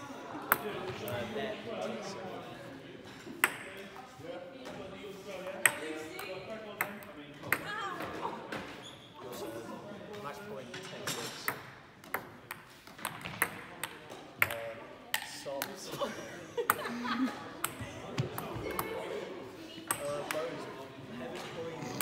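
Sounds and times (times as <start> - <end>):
table tennis ball hits: 3.4 - 3.7, 11.2 - 15.3.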